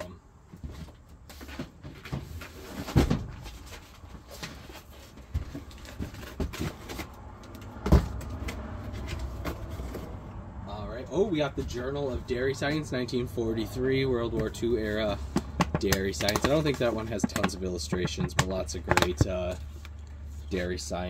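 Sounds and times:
rummaging through cardboard boxes: 0.5s - 10.2s, 14.5s - 20.8s.

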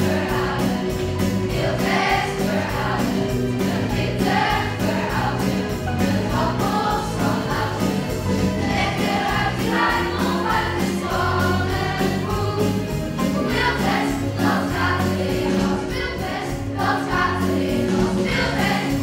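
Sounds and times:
children singing in unison: 0.0s - 19.0s
instrumental accompaniment with beat: 0.0s - 19.0s.

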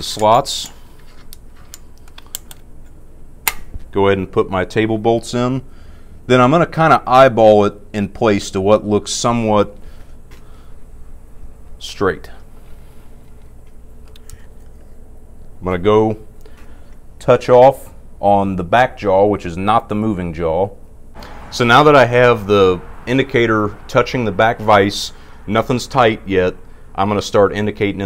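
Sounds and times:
low steady hum: 0.0s - 28.0s
metal clicks and taps: 0.2s - 3.7s.

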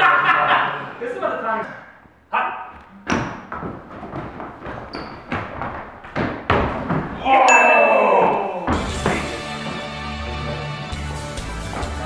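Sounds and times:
heavy footsteps on wooden stairs: 3.3s - 7.2s, 8.7s - 10.5s.

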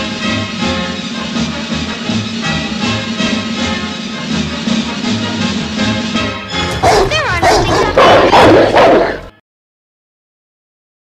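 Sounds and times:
music: 0.0s - 9.4s
dog barking loudly: 6.7s - 9.3s
dog whining: 6.8s - 9.3s.

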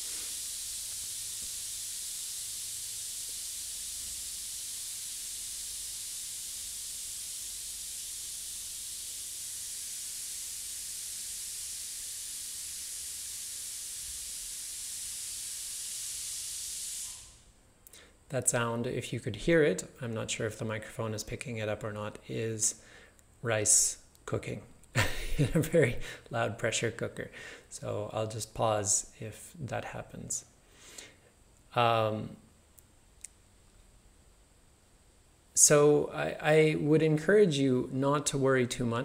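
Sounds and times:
pressure cooker hissing steam: 0.0s - 17.5s.

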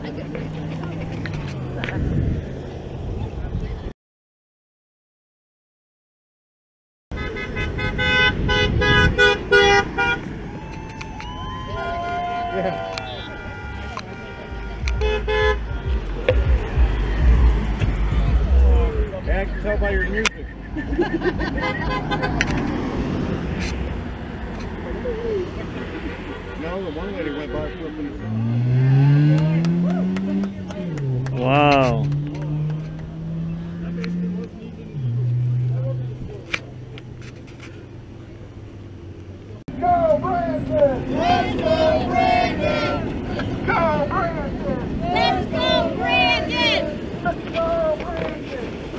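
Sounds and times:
passing traffic rumble: 0.0s - 3.9s, 7.2s - 48.9s
vehicle engine humming: 0.0s - 3.9s, 7.2s - 48.9s
car horn honking: 7.1s - 10.3s, 11.8s - 18.7s, 21.4s - 22.6s, 25.9s - 29.7s
people shouting and whooping: 10.4s - 14.1s, 39.8s - 48.1s.

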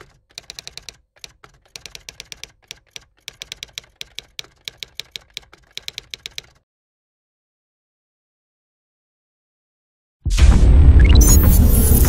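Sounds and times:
rapid keyboard typing: 0.0s - 6.6s.

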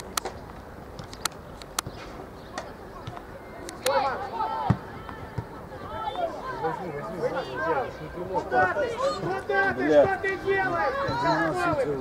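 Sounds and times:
child shouting: 3.9s - 5.3s.

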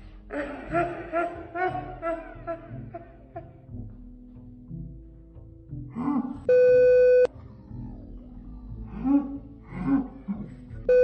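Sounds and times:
man shouting: 6.0s - 6.5s
censor bleep tone: 6.5s - 7.3s.

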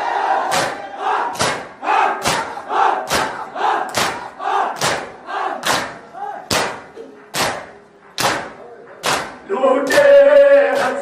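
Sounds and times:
group chanting in rhythm: 0.0s - 6.8s, 9.1s - 11.0s
hands slapping chests: 0.5s - 10.0s.

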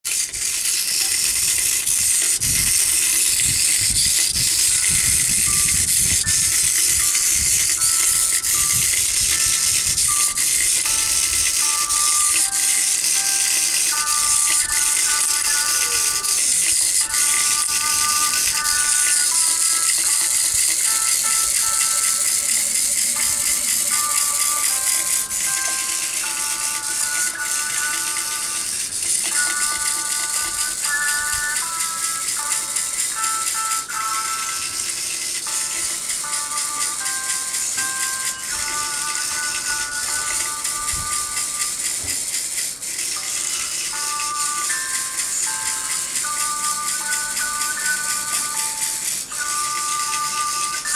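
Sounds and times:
toy motor rattling: 0.0s - 50.9s
simple electronic tune: 2.2s - 42.1s.

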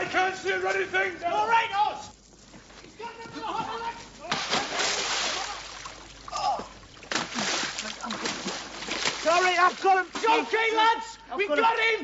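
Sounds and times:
people splashing through water: 2.0s - 11.0s.

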